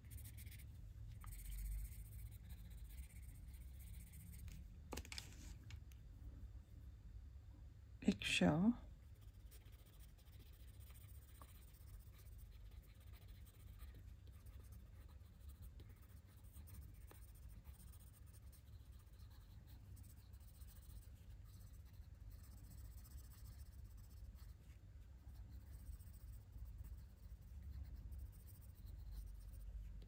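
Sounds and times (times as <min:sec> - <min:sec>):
pencil scratching on paper: 0:00.0 - 0:04.6, 0:09.1 - 0:30.0.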